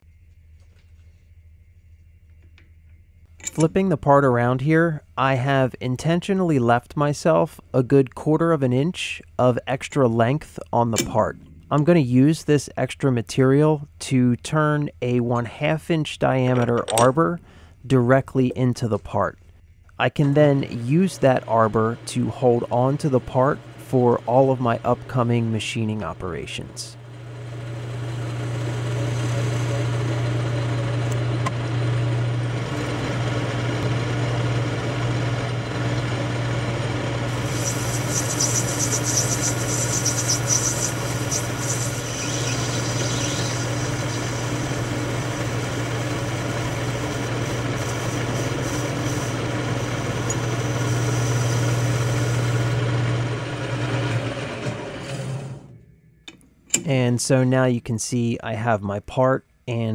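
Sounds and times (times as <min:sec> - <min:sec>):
low motor hum: 0:10.9 - 0:12.3, 0:19.4 - 0:56.8
metal lathe running: 0:20.7 - 0:25.6, 0:27.0 - 0:54.7
bright high hiss: 0:37.3 - 0:44.8.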